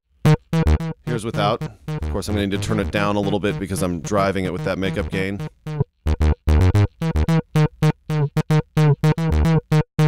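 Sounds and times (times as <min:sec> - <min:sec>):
synth bass short notes: 0:00.2 - 0:10.0.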